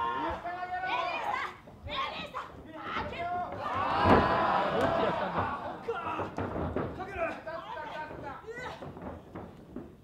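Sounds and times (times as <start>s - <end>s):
women shouting and yelling: 0.0s - 6.4s.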